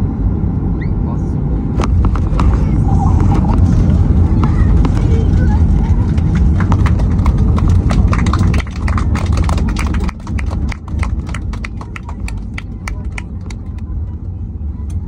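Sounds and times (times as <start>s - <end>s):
aircraft engines and wheels rumbling: 0.0s - 15.0s.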